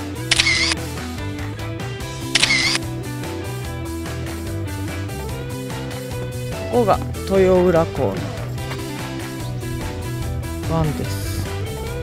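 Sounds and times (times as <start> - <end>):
background music: 0.0 - 12.0
camera shutter sound effect: 0.3 - 0.8, 2.3 - 2.8.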